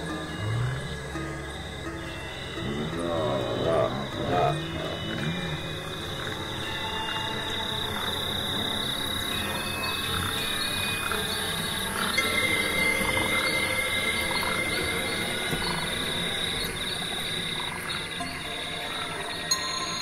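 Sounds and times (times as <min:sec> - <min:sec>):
experimental electronic music: 0:00.0 - 0:06.9.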